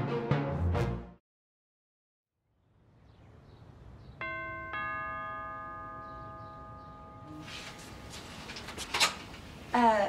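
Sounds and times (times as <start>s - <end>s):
doorbell ding-dong chime: 4.2s - 7.5s.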